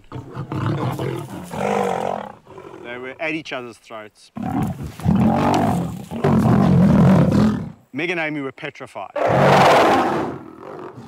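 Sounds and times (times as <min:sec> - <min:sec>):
lions snarling and roaring: 0:00.0 - 0:03.0, 0:04.4 - 0:07.9, 0:09.2 - 0:11.0.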